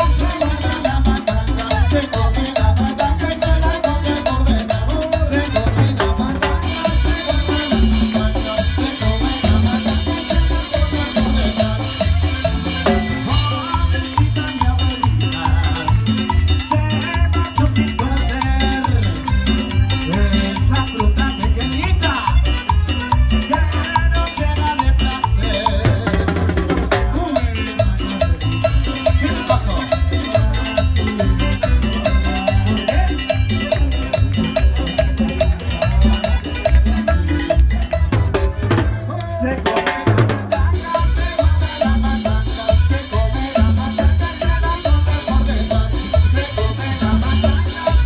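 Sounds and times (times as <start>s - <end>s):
bass pulse: 0.0s - 39.1s, 40.1s - 48.0s
live band playing dance music: 0.0s - 48.0s
drum kit and cymbals: 5.5s - 24.1s.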